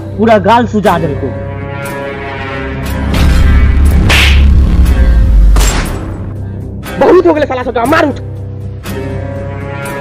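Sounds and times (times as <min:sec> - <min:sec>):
deep rumbling boom: 0:03.0 - 0:06.3.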